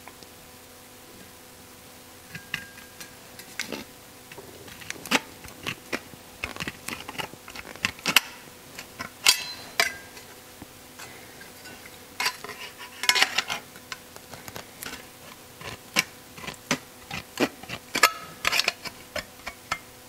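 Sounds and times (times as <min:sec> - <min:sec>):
steel piece clattering: 0:02.3 - 0:10.4, 0:11.0 - 0:14.0, 0:14.8 - 0:19.8
tin snips cutting metal: 0:04.7 - 0:10.3, 0:14.8 - 0:19.9.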